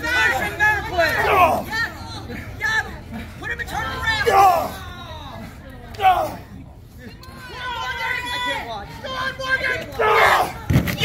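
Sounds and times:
spectators shouting: 0.0 - 6.5, 7.1 - 11.0.

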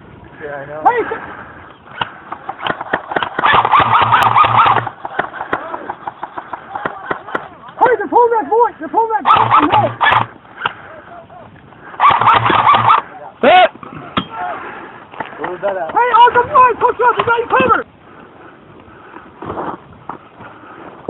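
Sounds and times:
distant shouting voices: 0.7 - 18.4
sharp clicks: 1.9 - 7.8, 12.0 - 13.0.

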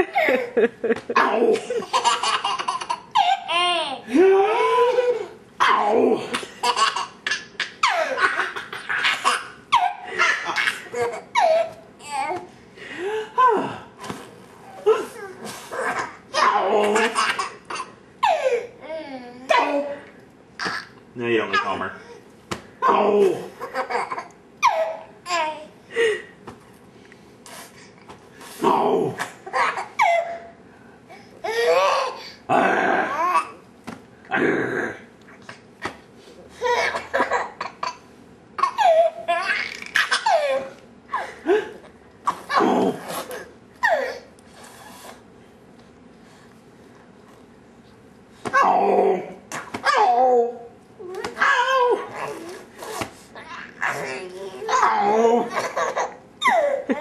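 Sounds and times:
toddler laughing: 54.6 - 57.0.

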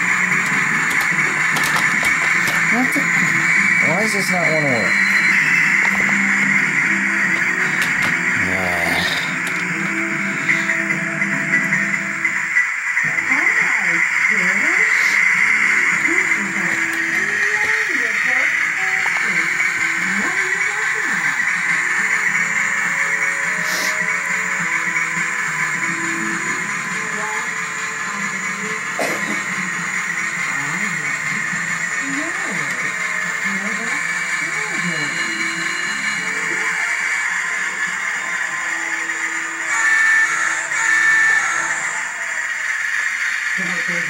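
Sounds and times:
television music: 0.0 - 44.0
voice over music: 8.3 - 11.1.

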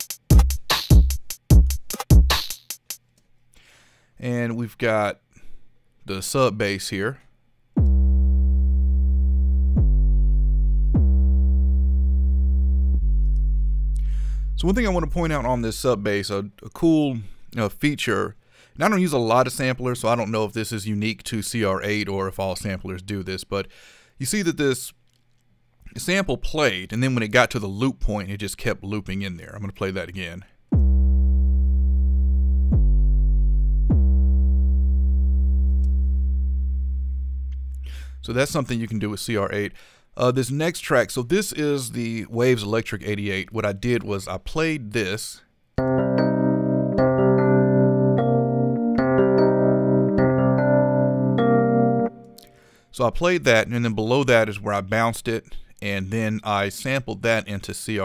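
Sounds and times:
deep sub bass notes: 7.8 - 16.0, 30.8 - 38.6.

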